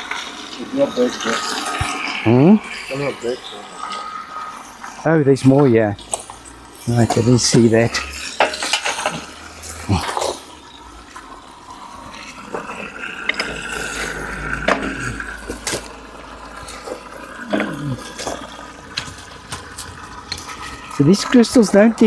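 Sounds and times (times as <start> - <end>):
water splashing over stones: 0.0 - 22.0.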